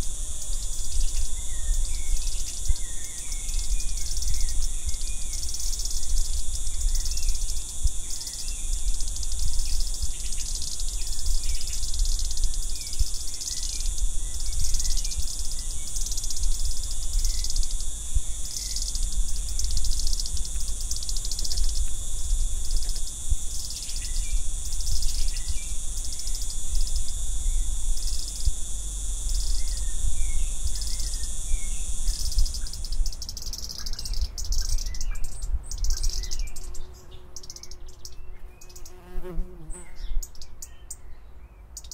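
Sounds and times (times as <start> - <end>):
insects trilling: 0.0 - 40.7
faint bird chirps: 29.3 - 41.9.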